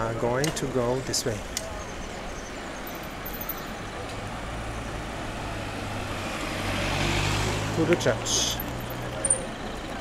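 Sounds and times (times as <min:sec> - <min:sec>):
road noise: 0:00.0 - 0:10.0
car engines at low speed: 0:00.6 - 0:10.0.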